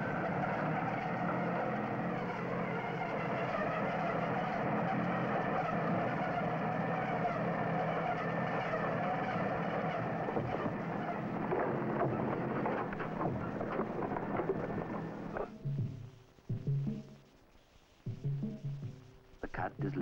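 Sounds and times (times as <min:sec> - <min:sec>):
logging machine engine droning: 0:00.0 - 0:17.1.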